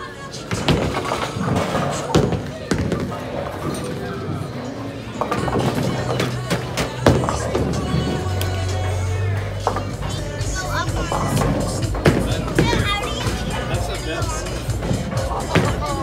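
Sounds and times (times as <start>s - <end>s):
music: 0.0s - 16.0s
voices: 0.0s - 16.0s
bowling ball crashing into pins: 0.5s - 4.1s, 5.2s - 8.2s, 11.0s - 13.6s, 14.5s - 16.0s
clatter of pins and balls: 0.5s - 4.2s.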